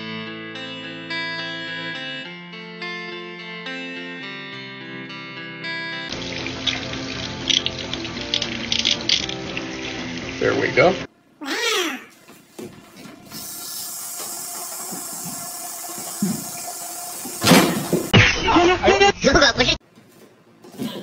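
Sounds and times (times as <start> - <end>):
background music: 0.0 - 11.1
water running from tap into sink: 6.1 - 11.1, 13.3 - 18.1.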